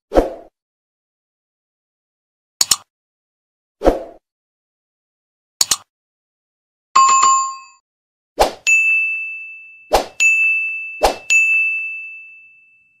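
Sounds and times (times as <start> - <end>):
sharp click: 2.6 - 2.9, 5.6 - 5.9
bright bell-like ding: 7.0 - 7.8, 8.7 - 13.0
short chime: 8.7 - 13.0.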